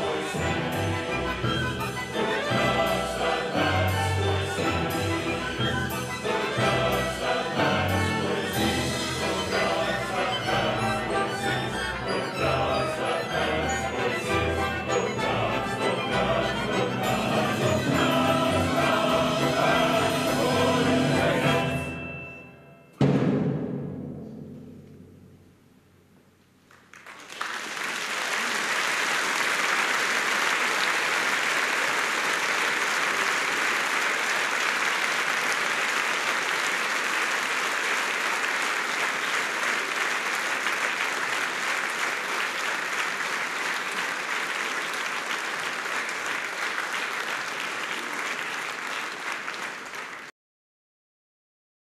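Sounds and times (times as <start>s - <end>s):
audience applauding: 26.7s - 50.3s.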